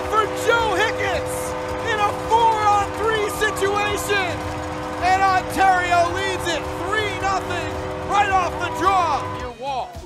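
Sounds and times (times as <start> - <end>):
excited commentator speaking: 0.0 - 10.0.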